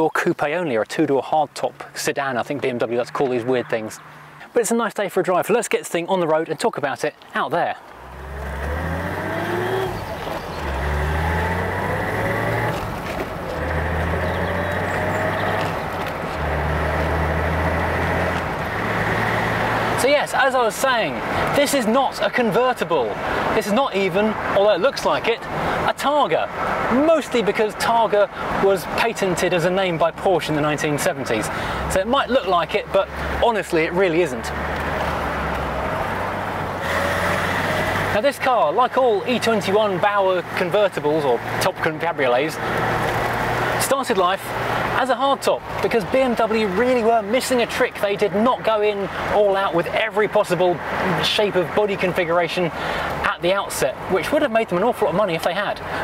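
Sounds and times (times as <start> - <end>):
road and wind noise: 0.0 - 56.0
car engine cruising: 1.5 - 4.5, 7.8 - 21.8, 27.8 - 54.6
car engine accelerating: 8.0 - 20.0, 31.8 - 38.4.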